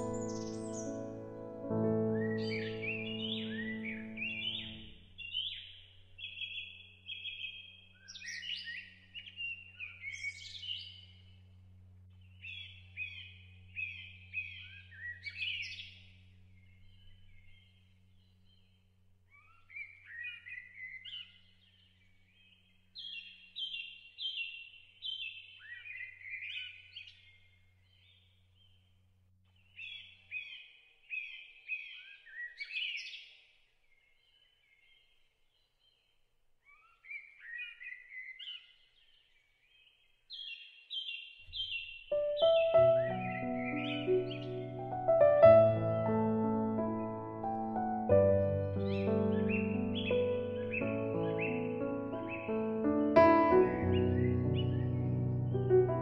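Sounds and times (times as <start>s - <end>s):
piano music: 0.0s - 5.1s, 42.1s - 56.0s
songbird singing: 0.0s - 56.0s
low hum: 10.9s - 19.1s.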